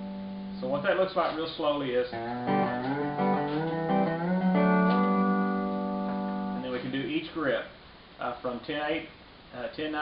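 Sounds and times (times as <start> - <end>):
pedal steel guitar chord ringing: 2.1 - 6.8.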